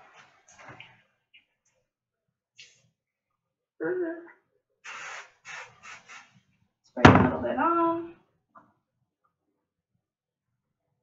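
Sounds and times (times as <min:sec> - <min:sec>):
person's voice: 0:03.8 - 0:04.3, 0:07.0 - 0:08.1
aerosol spray hisses: 0:04.9 - 0:06.3.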